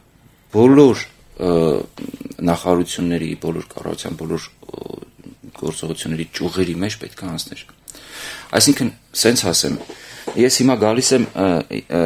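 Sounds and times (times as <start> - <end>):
man talking into microphone: 0.6 - 7.7, 8.5 - 12.0.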